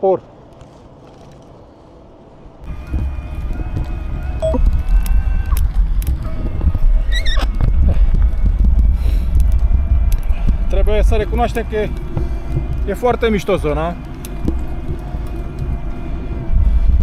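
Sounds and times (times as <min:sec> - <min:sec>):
wind buffeting microphone: 0:00.9 - 0:17.0.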